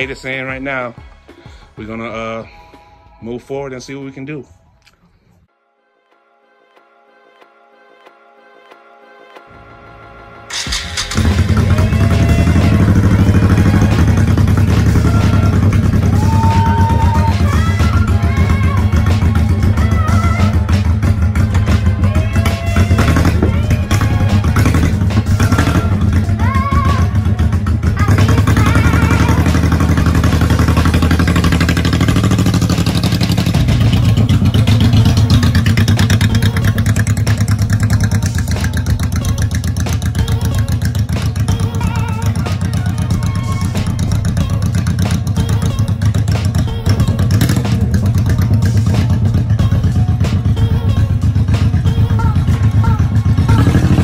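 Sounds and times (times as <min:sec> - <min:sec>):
motorcycle engine running: 0:10.5 - 0:54.0.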